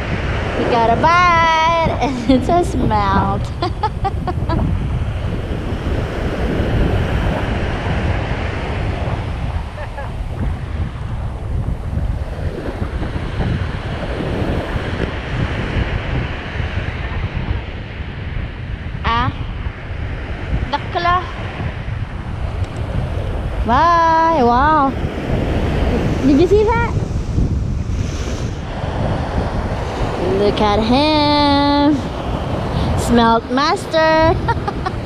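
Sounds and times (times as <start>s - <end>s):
ocean surf washing onto beach: 0.0s - 35.0s
wind buffeting microphone: 0.0s - 35.0s.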